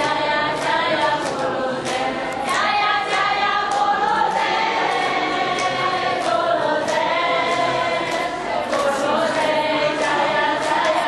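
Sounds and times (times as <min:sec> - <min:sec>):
group chanting in unison: 0:00.0 - 0:11.0.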